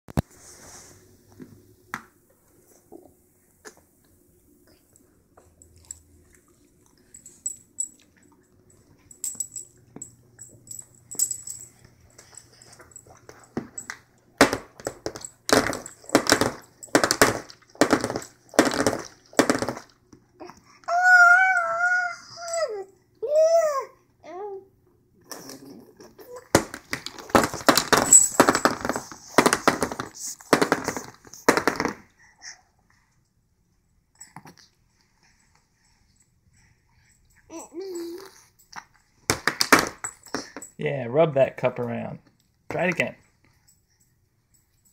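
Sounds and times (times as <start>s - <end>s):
baby squealing: 20.9s - 23.9s.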